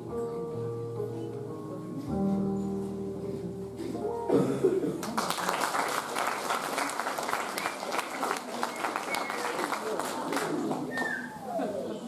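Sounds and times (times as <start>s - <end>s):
voices in a hall: 0.0s - 12.0s
audience applauding: 5.0s - 11.0s.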